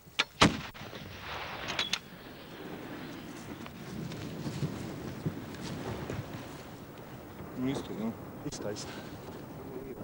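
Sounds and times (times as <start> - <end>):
wind buffeting microphone: 2.0 - 10.0.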